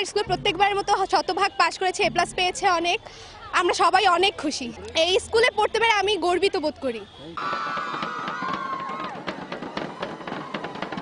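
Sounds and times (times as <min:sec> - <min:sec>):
marching bass drums and dhol: 0:00.0 - 0:03.0, 0:07.4 - 0:11.0.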